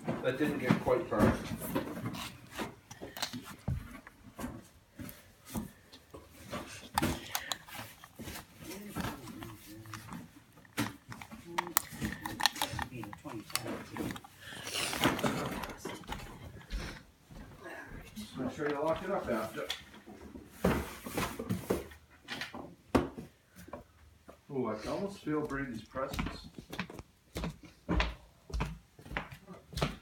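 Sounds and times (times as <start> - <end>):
rustling: 0.0 - 17.0
scattered clicks and knocks: 6.1 - 16.7.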